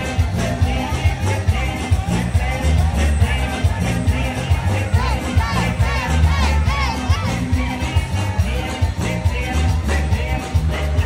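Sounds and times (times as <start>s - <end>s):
crowd shouting: 0.0s - 11.0s
loud dance music: 0.0s - 11.0s.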